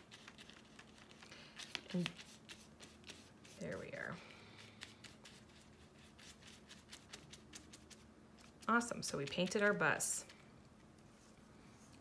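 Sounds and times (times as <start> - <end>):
paintbrush scratching on paper plate: 1.7 - 4.2.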